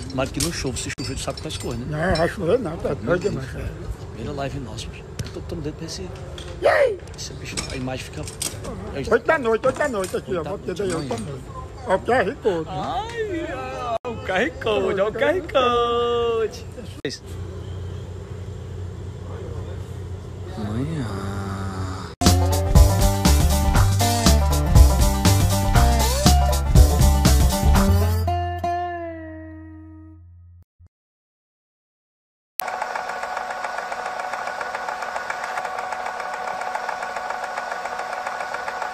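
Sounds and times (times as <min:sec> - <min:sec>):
mechanical drone with ticking rattle: 0:32.6 - 0:38.9.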